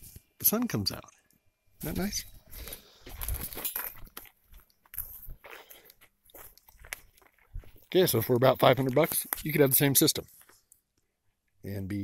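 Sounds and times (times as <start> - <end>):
footsteps crunching dry grass: 1.8 - 10.7.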